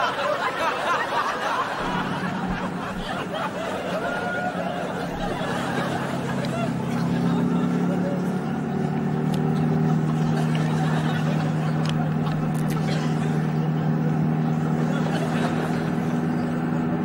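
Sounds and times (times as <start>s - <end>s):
car engine droning: 0.0s - 17.0s.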